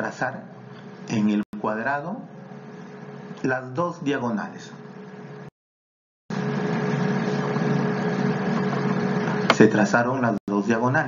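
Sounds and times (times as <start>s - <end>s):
background hum and hiss: 0.0s - 5.5s, 6.3s - 11.0s.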